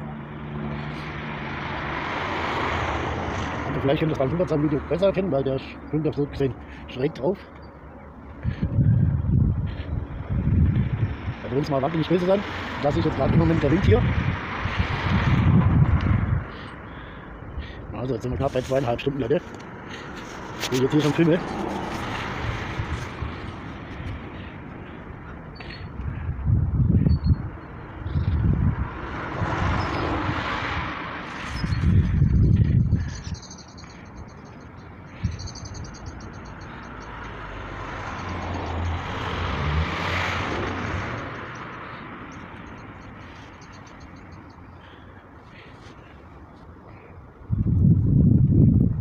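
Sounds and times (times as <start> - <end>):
traffic noise: 0.0 - 49.0
wind buffeting microphone: 8.4 - 11.5, 12.9 - 16.8, 21.4 - 33.7, 47.4 - 49.0.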